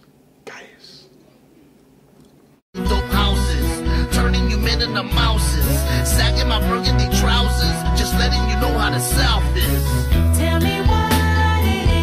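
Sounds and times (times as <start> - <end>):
faint room hum: 0.0 - 2.6
man whispering: 0.4 - 1.7.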